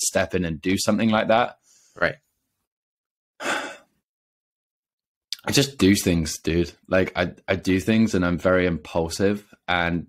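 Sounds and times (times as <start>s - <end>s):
person sighing: 3.4s - 4.0s.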